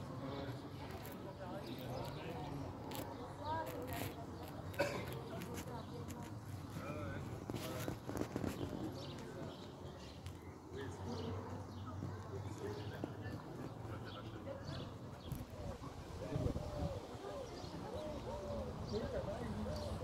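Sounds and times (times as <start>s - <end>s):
faint indistinct voices: 0.0s - 20.0s.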